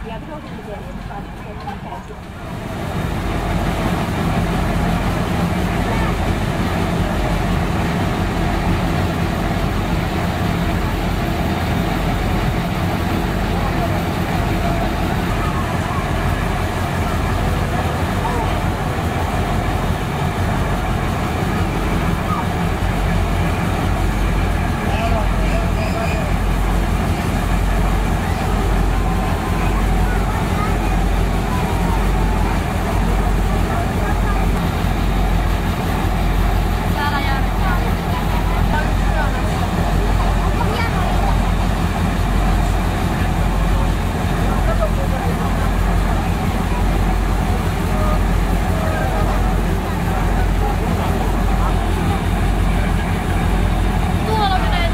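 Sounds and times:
diesel locomotive idling: 0:00.0 - 0:54.9
faint voices: 0:00.0 - 0:54.9.

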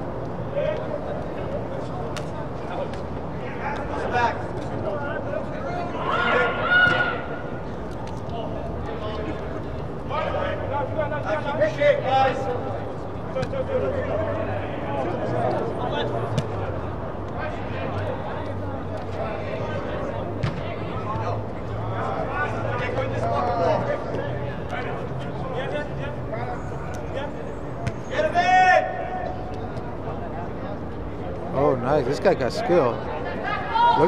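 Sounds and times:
distant players shouting: 0:05.6 - 0:07.6, 0:27.1 - 0:30.0.

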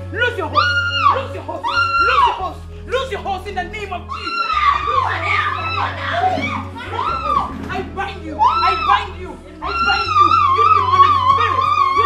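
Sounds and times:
women shouting and shrieking: 0:00.3 - 0:02.5, 0:04.1 - 0:12.0.

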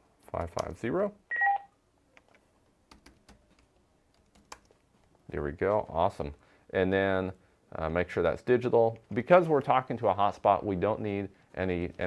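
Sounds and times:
faint keyboard clicks: 0:00.2 - 0:00.9, 0:02.1 - 0:05.9
two-tone computer beep: 0:01.3 - 0:01.7.

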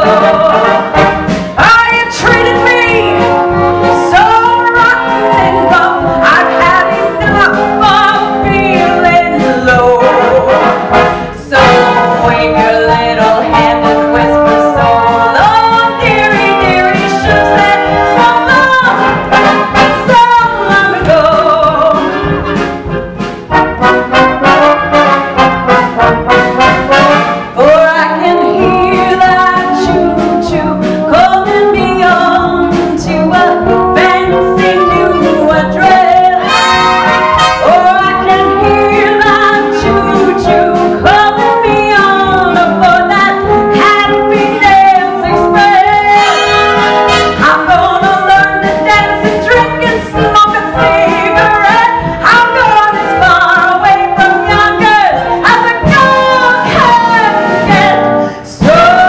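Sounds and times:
woman singing: 0:00.0 - 0:22.5, 0:27.0 - 0:59.0
pit orchestra playing show tune: 0:00.0 - 0:59.0.

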